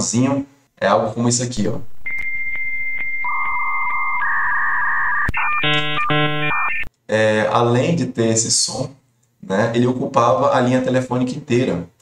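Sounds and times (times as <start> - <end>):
chord of many tones: 1.6 - 6.9
modem answer tone: 1.6 - 6.9
modem clicks: 1.9 - 6.9.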